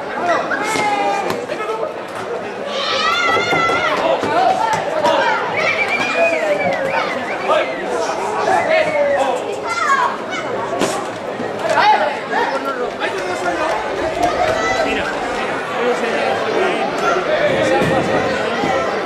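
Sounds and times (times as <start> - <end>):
crowd shouting: 11.6 - 19.0.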